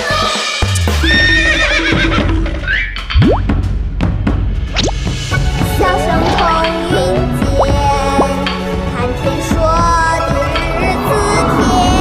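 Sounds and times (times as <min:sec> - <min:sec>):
background music: 0:00.0 - 0:12.0
horse whinnying: 0:01.0 - 0:02.9.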